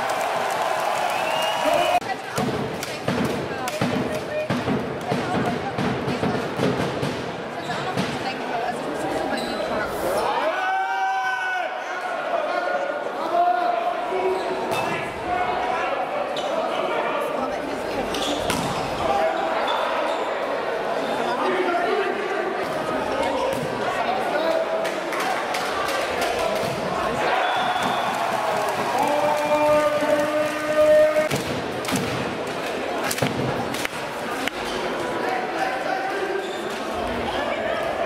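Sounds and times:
murmur of voices: 0:01.2 - 0:38.0
volleyballs struck and bouncing: 0:27.6 - 0:34.5.

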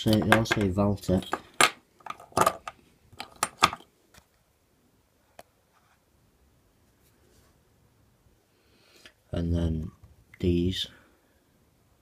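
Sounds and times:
metal parts clinking on worktop: 0:00.0 - 0:03.9.

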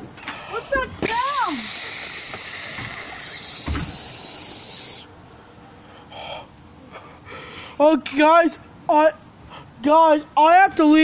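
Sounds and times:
steady high hiss: 0:00.5 - 0:10.6.

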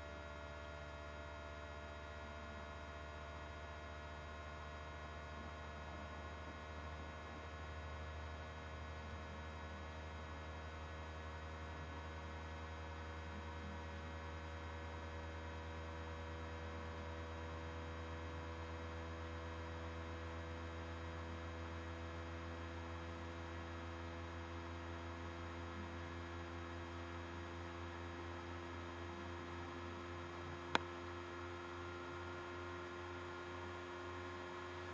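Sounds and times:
faint mains hum: 0:00.0 - 0:34.9.

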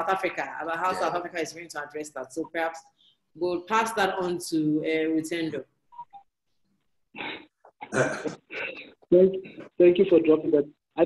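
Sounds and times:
man speaking: 0:00.9 - 0:01.2.

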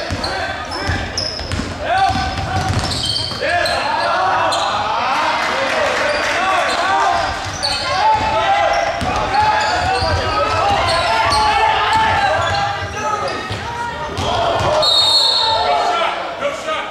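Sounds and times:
basketball bouncing on gym floor: 0:00.0 - 0:03.4, 0:07.4 - 0:11.1, 0:13.3 - 0:14.8
players and spectators shouting: 0:00.0 - 0:16.9.

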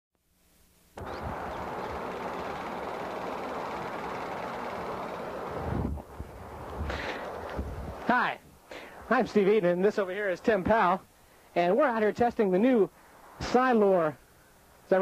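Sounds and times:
wind on microphone: 0:01.0 - 0:02.1, 0:05.5 - 0:08.1
freeway traffic rushing: 0:01.0 - 0:08.1.

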